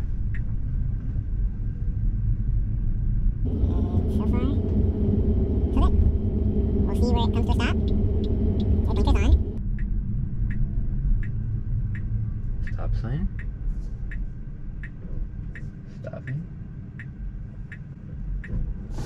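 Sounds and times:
road and tyre rumble in car cabin: 0:00.0 - 0:19.0.

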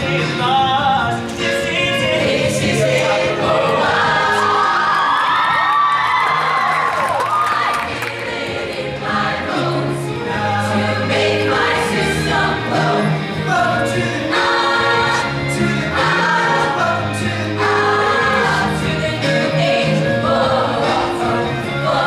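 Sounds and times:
choir singing: 0:00.0 - 0:05.7, 0:07.2 - 0:22.0
pop accompaniment with bass line: 0:00.0 - 0:22.0.

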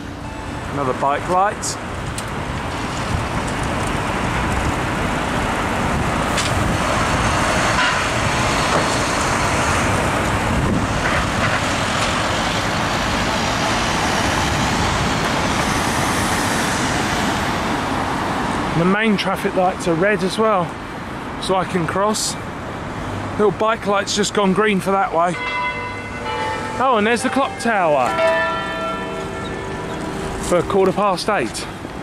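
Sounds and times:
road traffic: 0:00.0 - 0:32.0.

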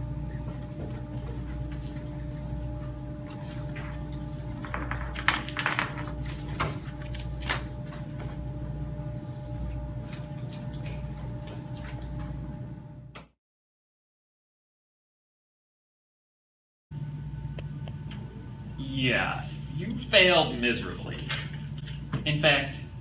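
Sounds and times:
room tone hum: 0:00.0 - 0:13.3, 0:16.9 - 0:23.0.

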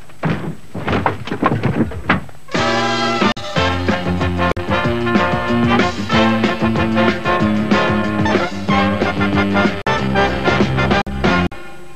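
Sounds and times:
car body thudding and crunching: 0:00.0 - 0:02.5.

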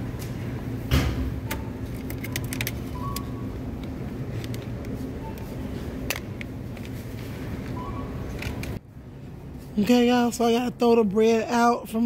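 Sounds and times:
supermarket background hum: 0:00.0 - 0:12.0.

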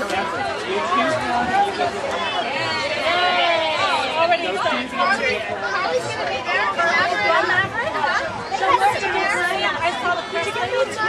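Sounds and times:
voices chattering and calling: 0:00.0 - 0:11.0.

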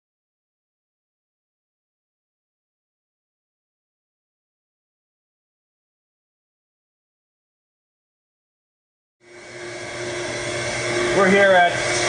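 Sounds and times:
machine hum and whir: 0:09.2 - 0:12.0
steady tones: 0:09.2 - 0:12.0.

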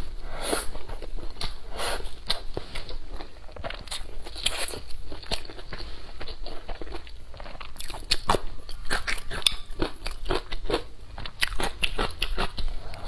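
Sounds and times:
person chewing crunchy food: 0:00.0 - 0:13.0.

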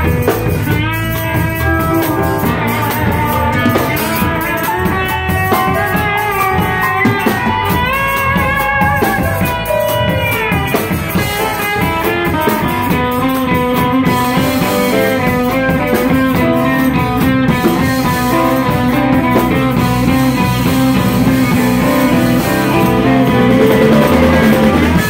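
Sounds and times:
drum kit: 0:00.0 - 0:25.0
electric guitar: 0:00.0 - 0:25.0.

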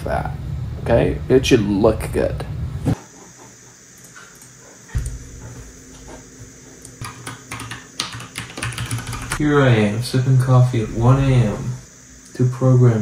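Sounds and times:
low steady hum: 0:00.0 - 0:13.0
computer keyboard typing: 0:06.8 - 0:09.4.

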